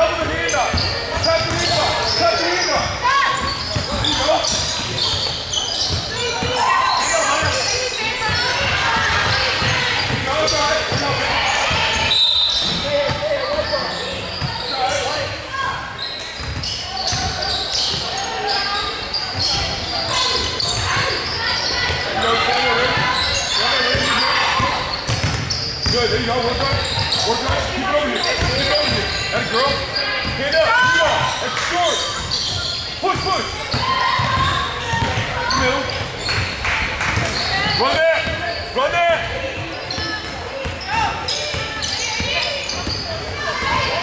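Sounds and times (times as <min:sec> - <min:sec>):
sneaker squeaks: 0:00.0 - 0:44.0
voices calling: 0:00.0 - 0:44.0
basketball bouncing on wooden floor: 0:25.1 - 0:26.0, 0:33.2 - 0:35.3.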